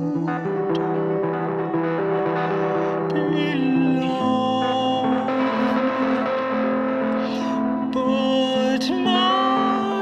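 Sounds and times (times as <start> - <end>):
guitar chord sustained: 0.0 - 10.0.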